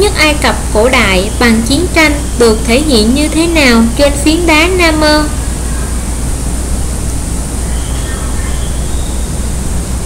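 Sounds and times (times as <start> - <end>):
constant low hum: 0.0 - 10.0
steady hiss: 0.0 - 10.0.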